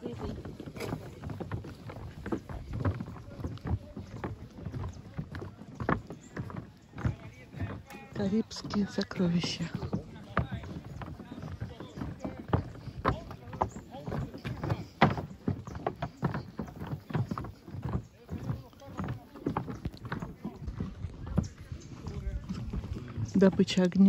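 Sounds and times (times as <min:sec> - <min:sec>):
footsteps on wooden boardwalk: 0:00.0 - 0:24.0.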